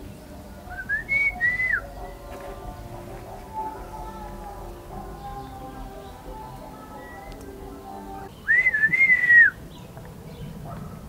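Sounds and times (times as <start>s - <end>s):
man whistling: 0.7s - 1.9s, 8.4s - 9.6s.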